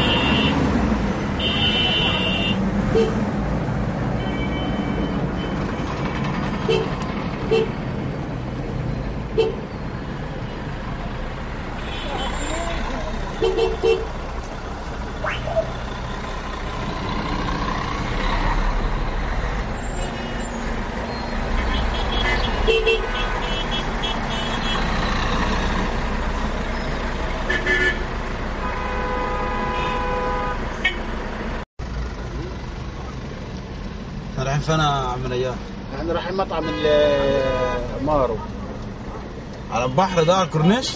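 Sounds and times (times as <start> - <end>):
long car horn tone: 0.0 - 0.6, 1.4 - 3.2, 13.4 - 14.2, 21.6 - 24.9, 27.4 - 31.1, 36.6 - 38.0
car road and engine noise: 0.0 - 40.9
car horn toots: 27.5 - 31.0.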